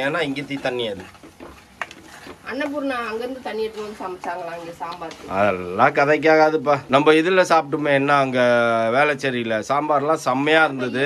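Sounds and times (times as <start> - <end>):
spatula stirring: 0.0 - 6.1.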